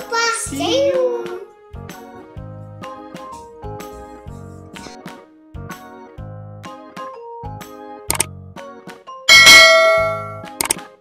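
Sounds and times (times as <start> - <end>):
light background music: 0.0 - 11.0
bell-like ding: 9.3 - 10.5.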